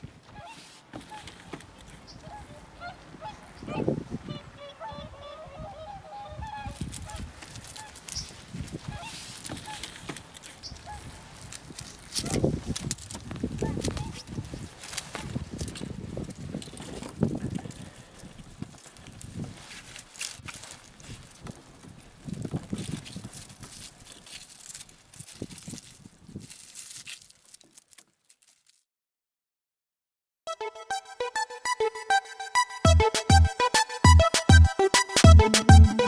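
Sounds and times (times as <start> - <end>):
footsteps on wooden planks: 0.0 - 3.5, 6.8 - 17.5
geese honking chorus: 0.3 - 11.5.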